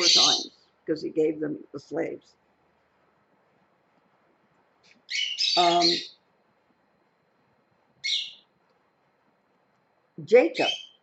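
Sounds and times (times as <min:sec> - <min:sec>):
parrot high-pitched call: 0:05.1 - 0:06.2, 0:08.0 - 0:08.4.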